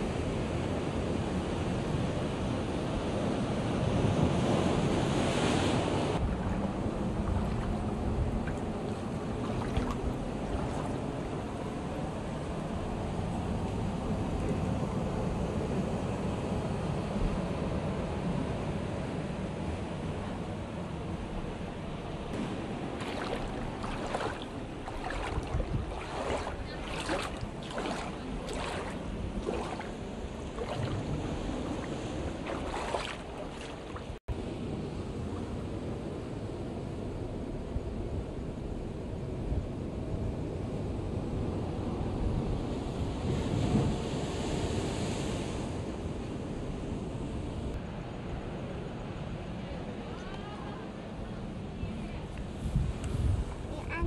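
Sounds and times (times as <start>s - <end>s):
ocean surf on rocky shore: 0.0s - 36.6s
wind on microphone: 3.8s - 17.6s, 20.0s - 36.4s, 51.8s - 54.0s
short crisp splashes: 6.2s - 11.1s, 22.4s - 34.2s.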